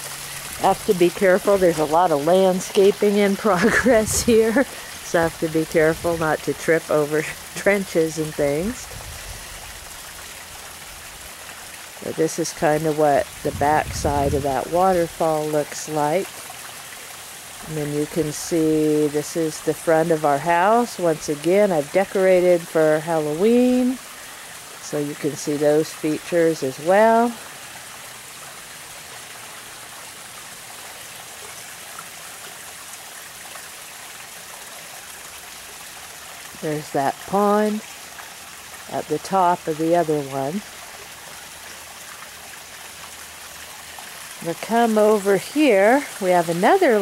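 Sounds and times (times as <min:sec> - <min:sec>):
waterfall rushing water: 0:00.0 - 0:47.0.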